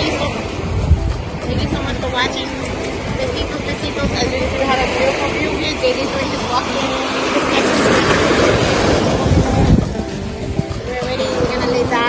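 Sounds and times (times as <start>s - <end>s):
surf washing over rocks: 0.0s - 12.0s
wind buffeting microphone: 0.0s - 12.0s.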